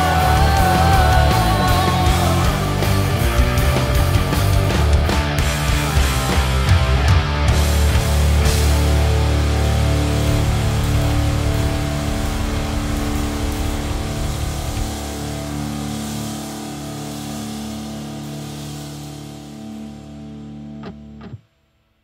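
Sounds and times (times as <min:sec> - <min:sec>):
rock guitar and bass chord ringing: 0:00.0 - 0:21.5.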